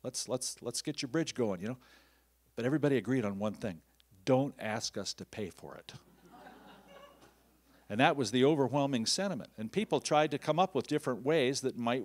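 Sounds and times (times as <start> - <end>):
audience laughter: 6.1 - 7.4.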